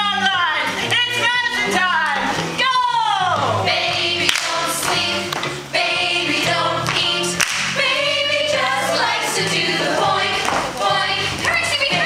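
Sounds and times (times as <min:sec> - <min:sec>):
musical accompaniment: 0:00.0 - 0:12.0
cast singing together: 0:03.3 - 0:12.0.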